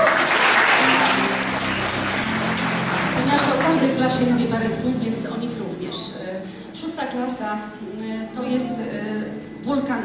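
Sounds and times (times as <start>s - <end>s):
audience applauding: 0.0s - 4.8s
low held music notes: 0.8s - 10.0s.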